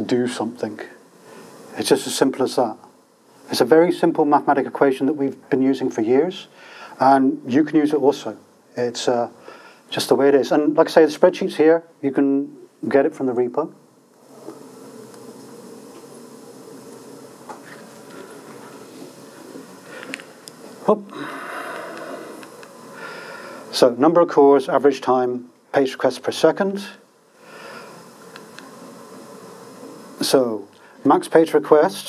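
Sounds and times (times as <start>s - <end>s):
room tone hiss: 0.0s - 32.0s
low buzzing hum: 10.2s - 31.8s
faint clicks: 21.7s - 22.8s, 28.2s - 28.7s.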